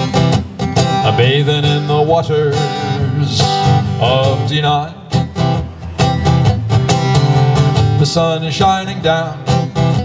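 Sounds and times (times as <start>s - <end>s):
guitar strumming chords: 0.0s - 10.0s.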